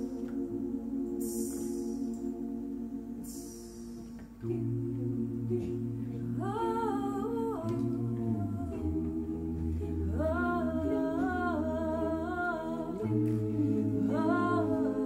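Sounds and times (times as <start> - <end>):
choir humming low chords: 0.0 - 15.0
woman singing sliding phrases: 4.4 - 15.0.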